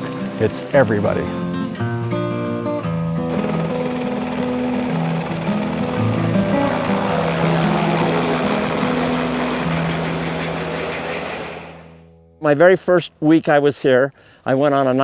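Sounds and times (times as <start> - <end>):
background music: 0.0 - 12.4
helicopter flying past: 3.1 - 12.1.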